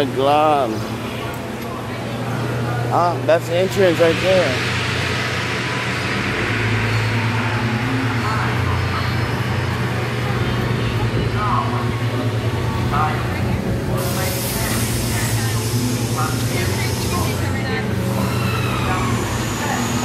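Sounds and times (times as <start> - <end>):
faint people's voices: 0.0 - 20.0
low mechanical hum: 0.0 - 20.0
rush of noise: 3.2 - 20.0.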